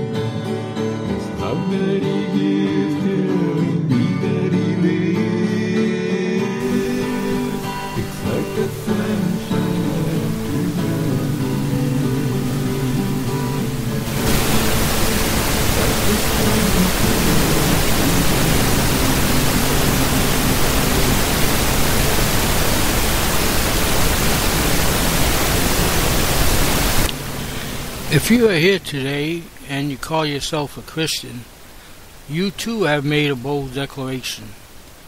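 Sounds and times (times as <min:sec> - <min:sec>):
acoustic guitar music: 0:00.0 - 0:22.8
loud static hiss: 0:04.8 - 0:35.0.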